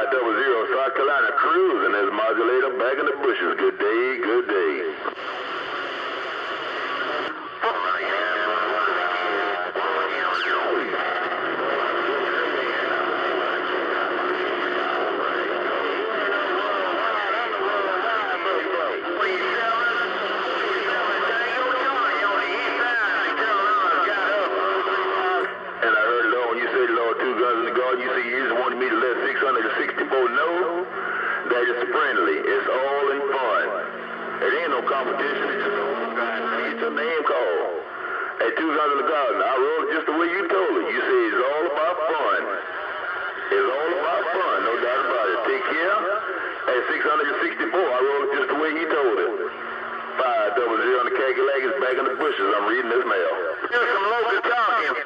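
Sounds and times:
garbled radio voices: 0.0 - 55.0
whistling radio tones: 2.8 - 49.5.

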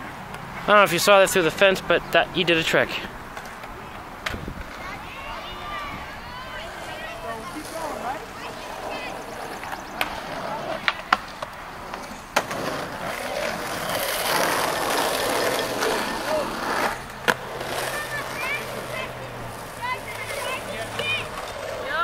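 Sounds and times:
skateboard wheels rolling on concrete: 0.0 - 22.0
skateboard clacks: 3.3 - 5.0, 6.6 - 22.0.

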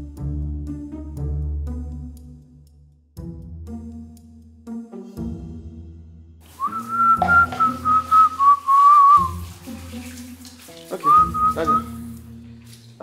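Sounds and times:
background music: 0.0 - 13.0
high whistled tune: 6.6 - 9.4, 11.0 - 12.0.

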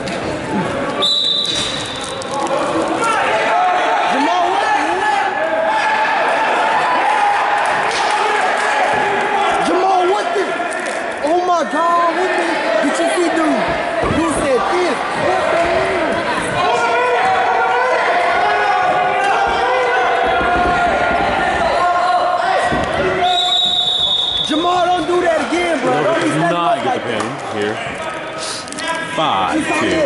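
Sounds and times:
people shouting and yelling: 0.4 - 30.0
referee's whistle blast: 1.0 - 2.2, 23.2 - 24.7.

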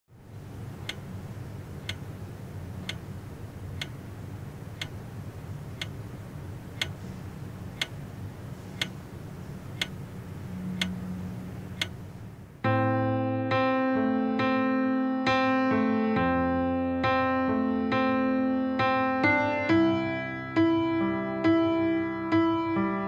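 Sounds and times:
low steady hum: 0.1 - 13.5
clock ticking: 0.7 - 1.1, 1.8 - 2.1, 2.8 - 3.1, 3.7 - 4.0, 4.7 - 5.0, 5.7 - 6.0, 6.7 - 7.0, 7.7 - 8.0, 8.8 - 9.0, 9.6 - 10.0, 10.7 - 11.0, 11.6 - 12.1.

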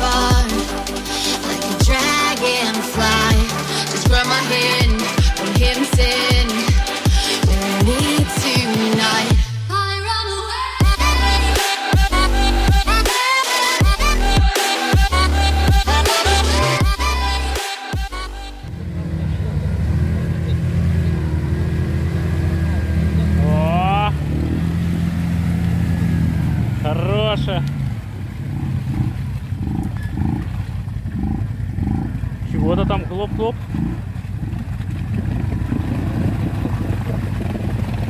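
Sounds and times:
quad engine under load: 18.5 - 38.0
rising voice calls: 18.7 - 24.6.

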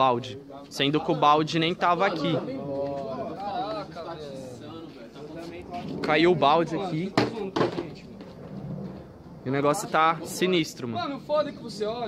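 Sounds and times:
plastic bucket knocking on tiles: 7.2 - 7.9.

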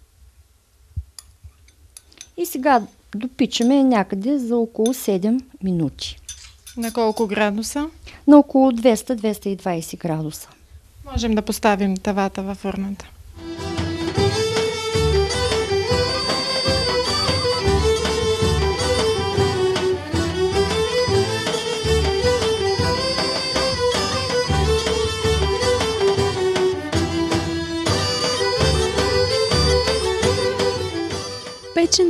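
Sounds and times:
low drum beat: 13.4 - 31.0
bagpipe melody over drone: 13.4 - 32.0.

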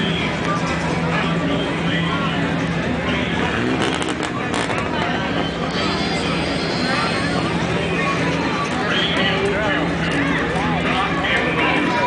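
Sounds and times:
people talking: 0.0 - 12.0
vehicle engine running: 0.0 - 12.0.

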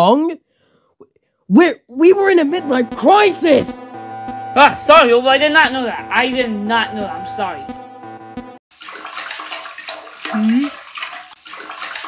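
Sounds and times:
background music: 2.0 - 8.6
rushing splashing water: 8.7 - 12.0.

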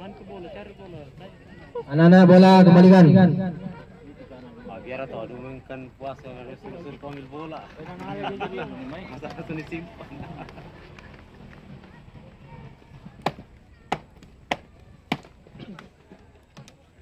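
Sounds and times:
faint background voices: 0.0 - 17.0
man's voice: 1.9 - 4.0.

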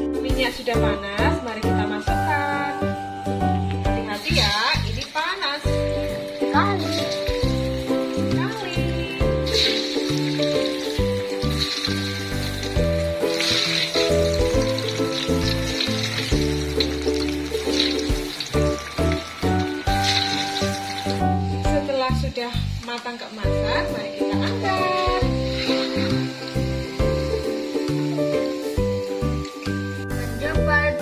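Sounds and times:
background music: 0.0 - 31.0
balls deep-frying in hot oil: 2.8 - 31.0.

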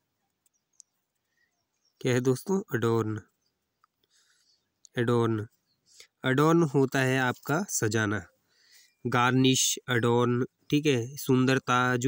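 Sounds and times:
faint clicks: 0.2 - 1.5, 3.6 - 5.0
man speaking: 2.0 - 3.3, 4.9 - 5.5, 6.2 - 8.3, 9.0 - 12.0.

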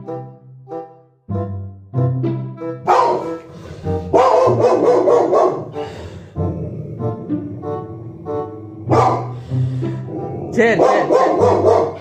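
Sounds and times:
background music: 0.0 - 12.0
dog barking: 2.9 - 3.5, 4.1 - 5.8, 8.9 - 9.4, 10.7 - 12.0.

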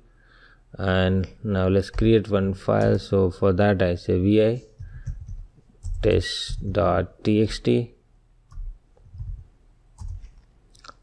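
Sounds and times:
faint keyboard keystrokes: 4.8 - 6.8, 10.0 - 11.0.

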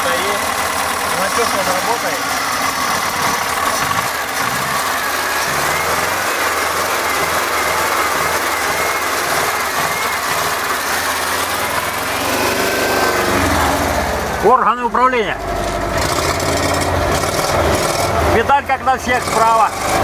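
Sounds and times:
engine idling: 0.0 - 20.0.

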